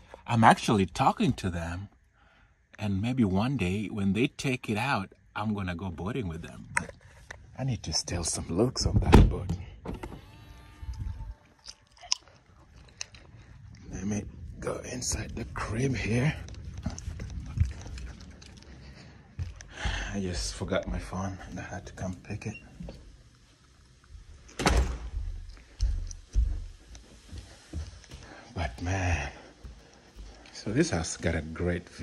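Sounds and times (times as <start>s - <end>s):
car door shutting: 8.9s - 10.6s
footsteps on concrete: 16.3s - 21.6s, 24.1s - 30.8s
dull low thumps: 24.2s - 28.0s.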